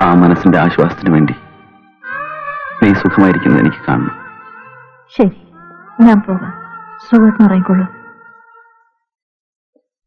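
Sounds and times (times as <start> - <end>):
film score of wavering tones: 0.4 - 8.9
short cry falling in pitch: 2.0 - 5.8.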